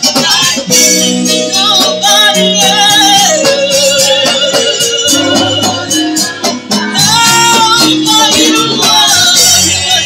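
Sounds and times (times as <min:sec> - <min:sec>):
drum kit: 0:00.0 - 0:10.0
electric bass: 0:00.0 - 0:10.0
electric guitar: 0:00.0 - 0:10.0
wavering lead note: 0:02.3 - 0:07.6.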